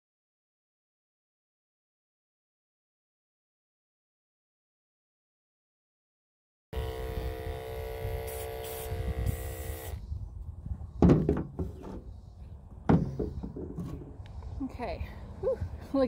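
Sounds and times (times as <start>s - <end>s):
electric clippers humming: 6.8s - 10.0s
loud knocks: 11.0s - 11.9s, 12.9s - 13.9s.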